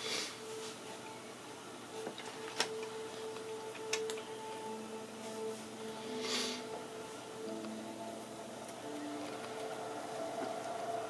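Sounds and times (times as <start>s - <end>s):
slow music with held notes: 0.0s - 11.0s.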